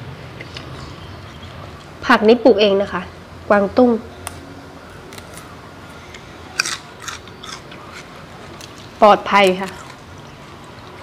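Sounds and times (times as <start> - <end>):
leaves being torn: 4.2 - 5.5, 6.1 - 11.0.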